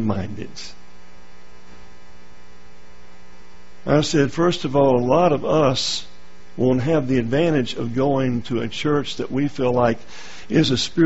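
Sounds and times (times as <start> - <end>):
man's voice: 0.0 - 0.8, 3.9 - 11.0
electrical mains hum: 0.0 - 11.0.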